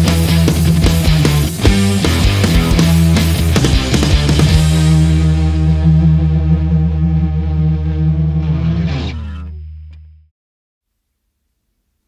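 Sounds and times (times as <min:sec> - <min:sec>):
distorted guitar and bass chord: 0:00.0 - 0:10.3
downward pitch slide: 0:02.4 - 0:09.6.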